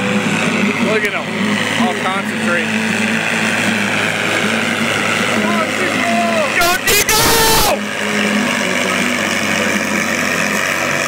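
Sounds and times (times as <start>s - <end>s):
faint crowd voices: 0.0s - 11.0s
tractor engine running: 0.0s - 11.0s.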